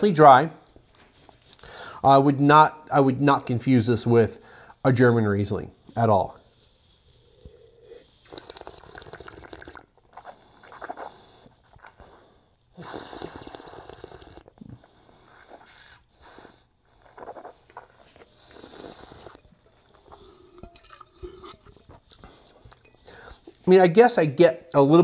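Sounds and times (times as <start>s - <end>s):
soft breaths: 0.5s - 2.1s, 4.3s - 4.9s, 5.7s - 8.3s, 14.5s - 23.7s
person slurping wine: 7.3s - 12.1s, 12.8s - 23.6s.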